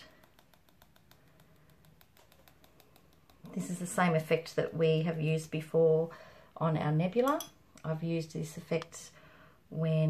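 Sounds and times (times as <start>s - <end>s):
paintbrush flicking paint ticks: 0.0s - 3.6s.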